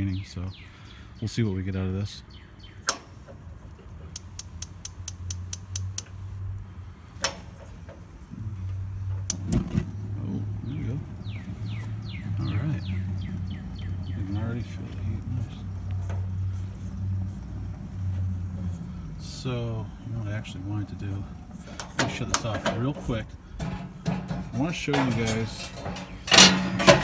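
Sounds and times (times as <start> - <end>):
grill igniter clicking: 2.8 - 3.4, 4.1 - 6.2, 9.2 - 9.7.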